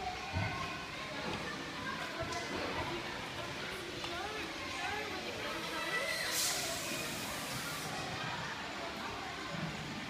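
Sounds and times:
faint voices: 0:00.0 - 0:10.0
steady hiss: 0:06.3 - 0:08.1.

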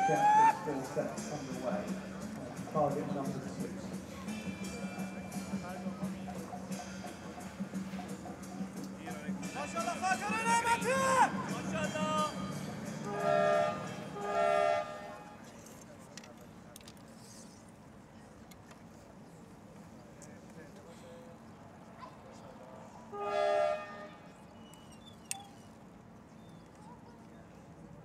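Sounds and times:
spectators calling out: 0:00.0 - 0:01.0
spectators murmuring: 0:00.0 - 0:28.0
signal horn blasts: 0:13.0 - 0:15.4, 0:23.1 - 0:24.3.

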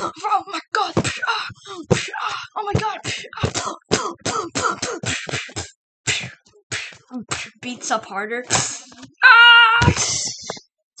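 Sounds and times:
person's high-pitched squeal: 0:09.2 - 0:10.6.

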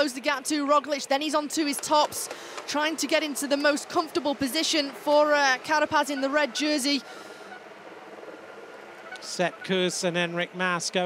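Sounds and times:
commentator talking: 0:00.0 - 0:07.2, 0:09.2 - 0:11.0
wind and road noise: 0:00.0 - 0:11.0.

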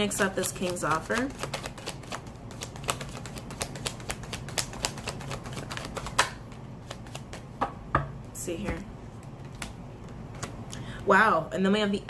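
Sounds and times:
cards being shuffled: 0:00.2 - 0:07.5.

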